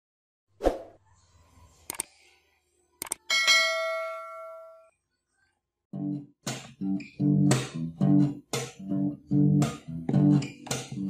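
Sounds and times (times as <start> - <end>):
mouse clicks: 1.9 - 2.1, 3.0 - 3.2.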